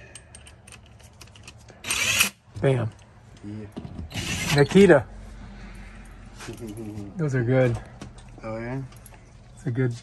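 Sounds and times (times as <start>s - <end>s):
impact driver running screw: 1.8s - 2.4s, 4.1s - 4.6s.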